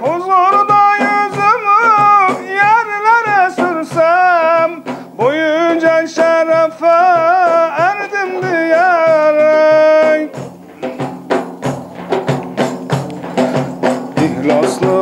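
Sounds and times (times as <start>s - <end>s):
man singing melismatic phrases: 0.0s - 10.4s, 14.1s - 15.0s
frame drums beating: 0.0s - 15.0s.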